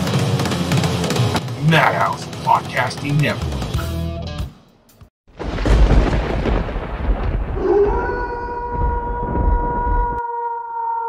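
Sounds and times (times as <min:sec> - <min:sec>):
thunder rumbling crack: 0:05.3 - 0:10.2.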